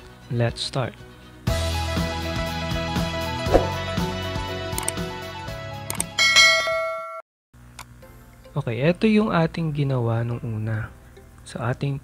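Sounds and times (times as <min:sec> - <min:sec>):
click: 0:04.8 - 0:05.0, 0:05.9 - 0:06.1
bright bell-like ding: 0:06.2 - 0:07.2.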